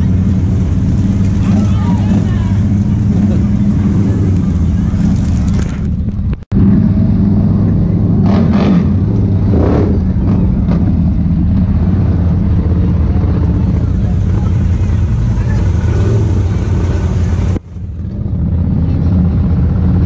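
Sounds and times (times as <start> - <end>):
faint voices: 0.0 - 6.1, 6.8 - 20.0
engine running at low speed: 0.0 - 20.0.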